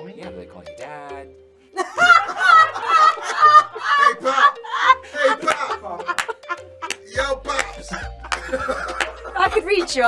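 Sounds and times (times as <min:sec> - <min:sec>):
woman laughing loudly: 0:01.8 - 0:07.0, 0:07.9 - 0:10.0
man laughing: 0:01.8 - 0:09.9.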